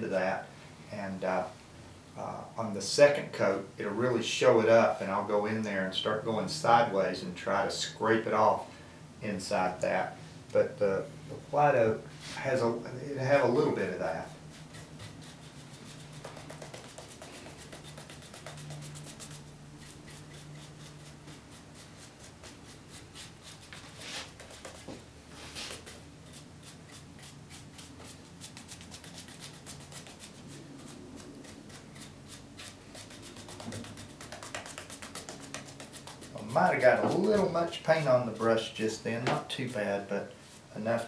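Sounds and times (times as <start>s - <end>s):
paintbrush rubbing strokes: 13.8s - 40.8s
brush swishes: 14.0s - 40.8s.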